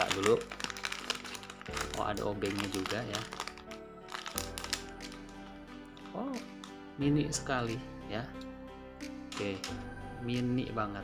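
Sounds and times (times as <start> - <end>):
plastic bag crackling: 0.0 - 6.8, 9.3 - 9.8
background music with held notes: 0.0 - 11.0.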